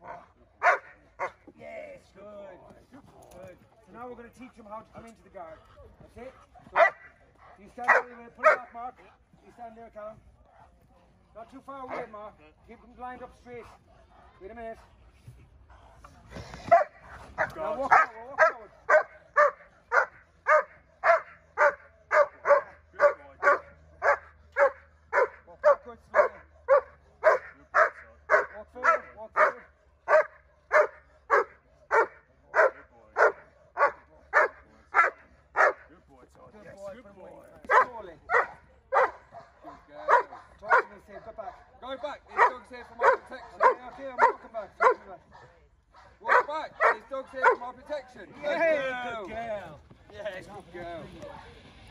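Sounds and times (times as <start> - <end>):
dog barking rapidly: 0.1 - 1.4, 6.7 - 7.1, 7.8 - 8.7, 16.7 - 35.8, 37.7 - 41.6, 42.3 - 45.0, 46.0 - 47.6.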